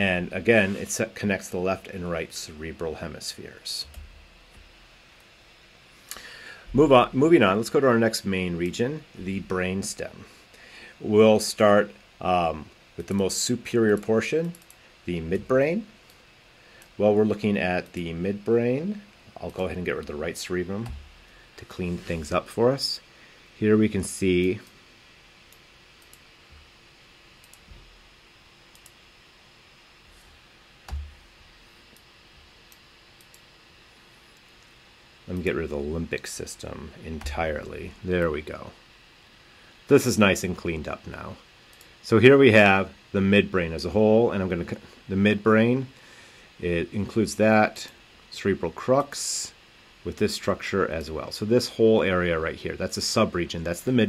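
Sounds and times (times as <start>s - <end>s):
faint steady hiss: 0.0s - 54.0s
low hum: 6.1s - 43.0s
faint computer clicks: 13.9s - 14.8s, 25.5s - 26.6s, 27.4s - 27.9s.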